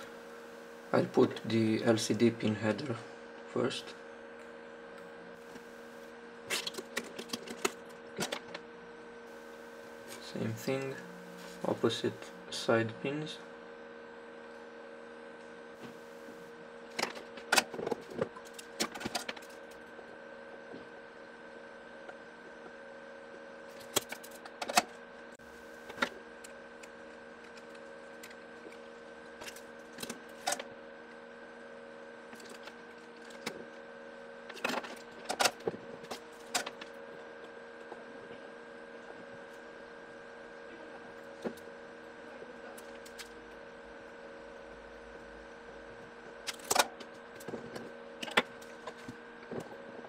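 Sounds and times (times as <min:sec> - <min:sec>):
steady electrical hum: 0:00.0 - 0:50.0.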